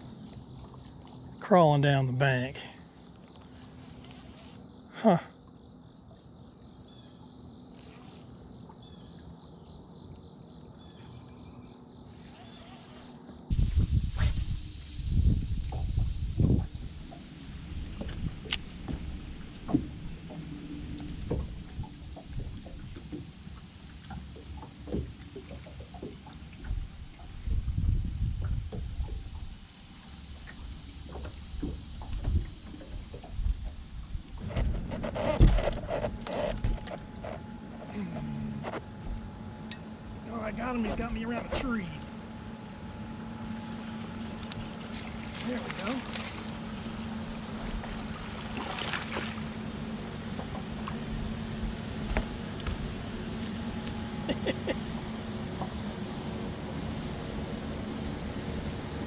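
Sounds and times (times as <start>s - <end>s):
insects trilling: 0.0s - 59.0s
wind buffeting microphone: 13.5s - 20.2s, 26.7s - 29.6s
small knocks and ticks: 21.3s - 27.3s.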